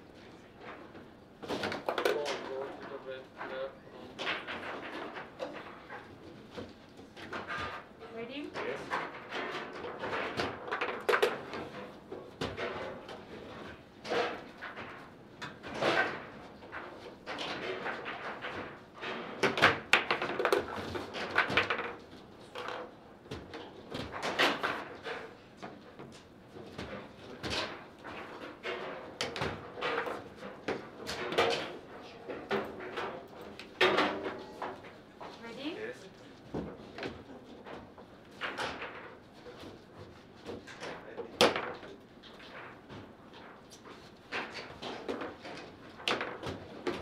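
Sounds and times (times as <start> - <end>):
foosball clacks and knocks: 0.6 - 7.9, 8.5 - 35.4, 36.5 - 47.0.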